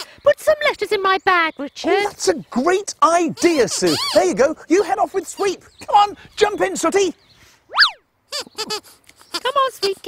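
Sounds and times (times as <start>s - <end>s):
high squeaky voice chattering: 3.2s - 4.4s, 7.7s - 10.0s
cartoon boing whoop: 7.7s - 8.0s.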